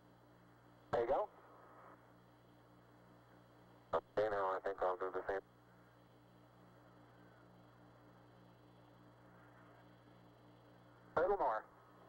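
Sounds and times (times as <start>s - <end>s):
faint pulsing radio hum and hiss: 0.0s - 12.0s.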